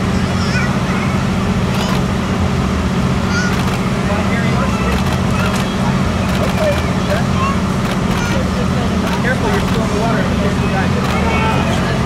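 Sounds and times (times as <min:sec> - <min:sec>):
chatter of many people: 0:00.0 - 0:02.2, 0:03.2 - 0:12.0
low rumble of machinery: 0:00.0 - 0:12.0.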